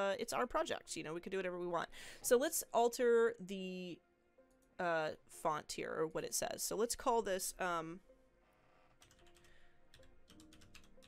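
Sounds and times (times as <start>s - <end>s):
quiet background music: 0.0s - 11.0s
keyboard typing clicks: 9.0s - 11.0s.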